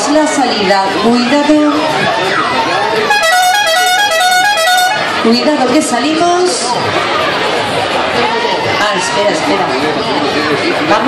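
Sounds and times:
electronic musical horn: 3.0 - 5.1.

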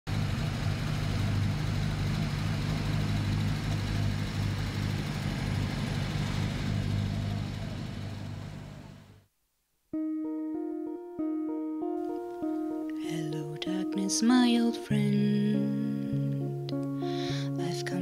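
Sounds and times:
car engine running: 0.1 - 9.3
traffic hiss: 0.1 - 9.3.

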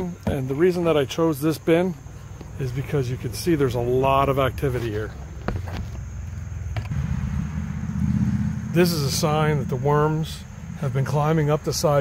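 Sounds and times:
low rumble: 6.8 - 12.0.

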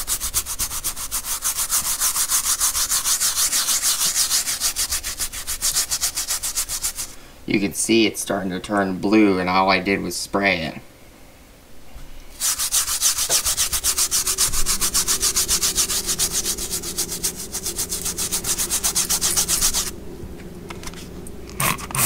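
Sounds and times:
brush scrubbing wet fabric: 0.0 - 7.2, 12.3 - 19.9.

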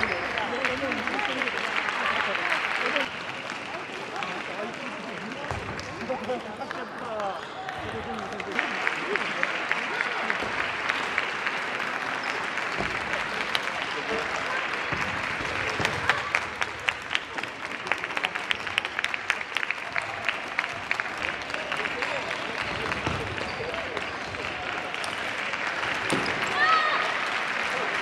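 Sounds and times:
applause: 0.0 - 28.0
crowd voices: 0.0 - 28.0
rapid sharp claps: 0.0 - 28.0.

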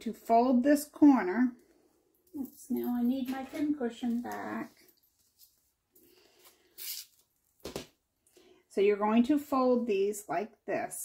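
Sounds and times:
soft fabric rustles: 1.9 - 7.6.

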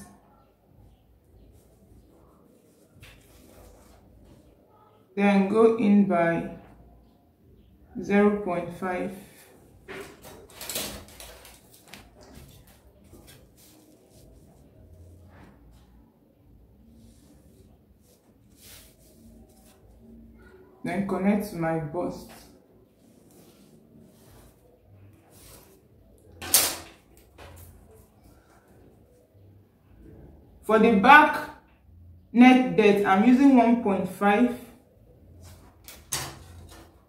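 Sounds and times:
faint scratch: 1.5 - 4.6, 16.8 - 20.6, 22.9 - 25.9.

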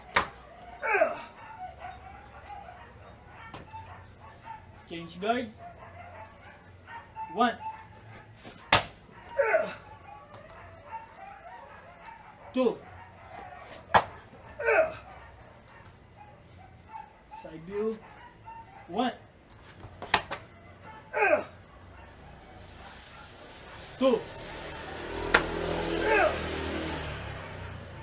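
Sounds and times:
sharp slaps on mat: 0.0 - 0.4, 8.4 - 9.0, 13.7 - 14.2, 19.8 - 20.5, 25.3 - 25.6
person shouting and grunting: 0.8 - 1.4, 9.4 - 9.9, 14.6 - 15.1, 21.1 - 21.6, 25.9 - 26.4.

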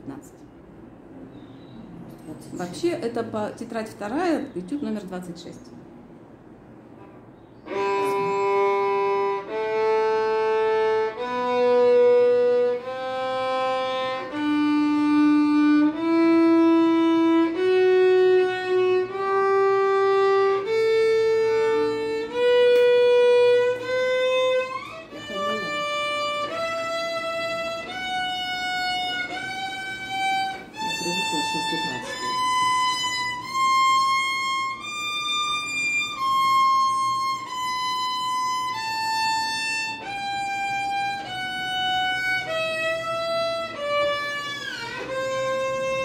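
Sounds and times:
violin playing a slow scale: 7.6 - 46.0.

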